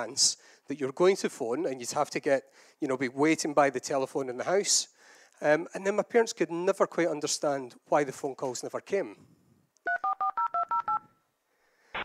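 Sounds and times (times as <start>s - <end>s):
touch-tone dialing beeps: 9.9s - 11.0s.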